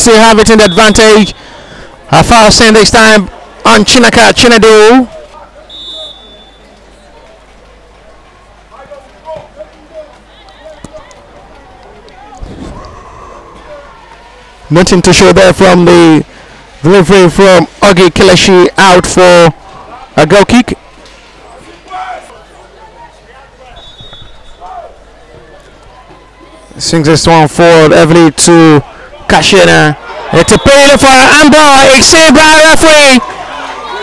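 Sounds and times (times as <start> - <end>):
high whistle tone: 5.7 - 6.7, 23.8 - 24.6
players and onlookers shouting: 8.8 - 14.7, 21.4 - 23.8, 28.8 - 34.0.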